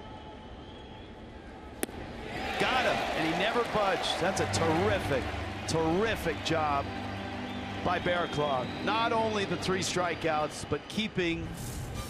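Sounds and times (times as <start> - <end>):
ballpark crowd noise: 0.0 - 11.5
ball popping into catcher's mitt: 1.8 - 2.0.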